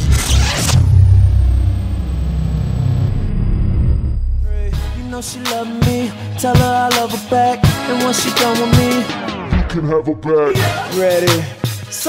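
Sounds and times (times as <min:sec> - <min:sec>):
high tone sliding down: 0:00.0 - 0:05.3
deep bass rumble: 0:00.0 - 0:05.4.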